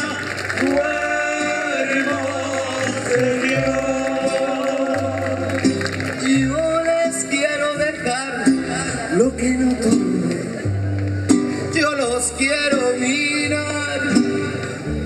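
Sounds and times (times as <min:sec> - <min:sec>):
deep bass line: 0:00.0 - 0:15.0
guitar strumming: 0:00.6 - 0:15.0.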